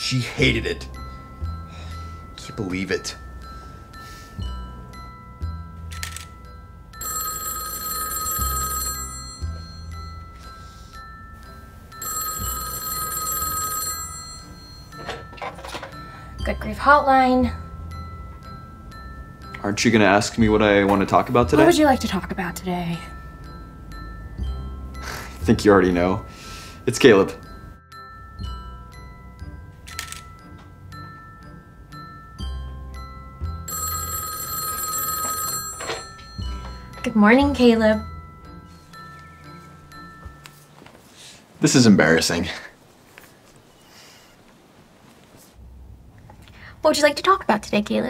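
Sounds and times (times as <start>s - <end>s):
glockenspiel-like music: 0.0s - 41.4s
telephone ringing: 7.0s - 10.3s, 12.0s - 16.0s, 33.6s - 38.0s.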